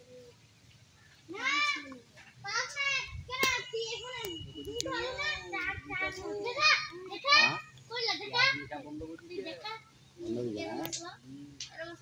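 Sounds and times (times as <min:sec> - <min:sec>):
children talking and calling out: 0:01.1 - 0:12.0.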